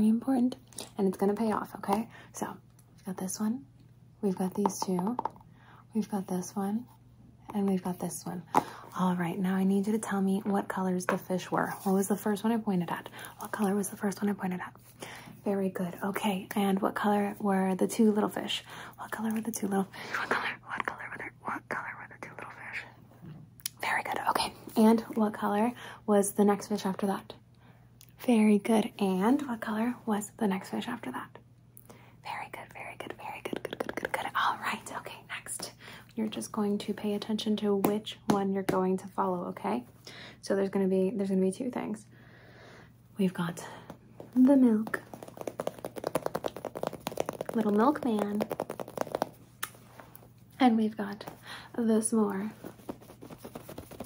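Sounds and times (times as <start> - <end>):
woman speaking: 0.0 - 5.3, 5.9 - 14.7, 15.4 - 21.2, 43.2 - 45.2, 47.5 - 48.5, 50.6 - 52.7
woman whispering: 20.1 - 23.0, 23.7 - 24.7, 32.2 - 35.8
fingernails tapping foam toy: 45.1 - 49.4.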